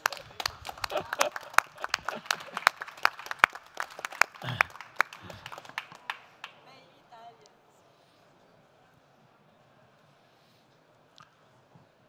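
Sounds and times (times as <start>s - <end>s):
audience applauding: 0.0s - 6.6s
man clapping along: 0.0s - 6.6s
voices and laughter: 0.7s - 2.7s.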